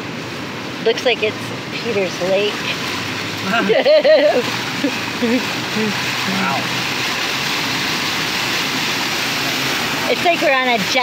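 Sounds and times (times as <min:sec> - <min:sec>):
water spray rushing against vehicle: 0:00.1 - 0:11.0.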